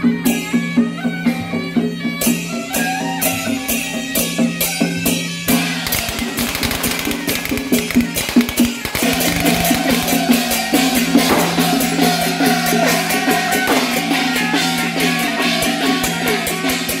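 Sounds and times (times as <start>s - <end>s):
drum beats: 0.0s - 17.0s
hand cymbals clashing: 0.0s - 17.0s
suona shrill melody: 0.0s - 17.0s.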